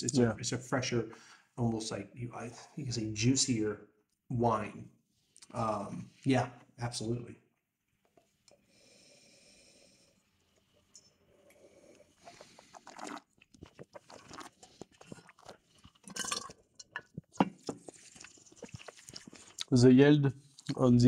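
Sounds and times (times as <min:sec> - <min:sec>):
slurping: 0:10.4 - 0:19.7, 0:20.4 - 0:20.8
wet mouth sounds: 0:12.2 - 0:16.0, 0:17.0 - 0:19.7.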